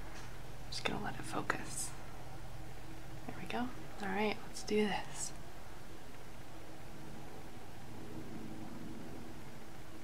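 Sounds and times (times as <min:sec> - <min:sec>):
faint low hum: 0:00.0 - 0:10.0
steady background hiss: 0:00.0 - 0:10.0.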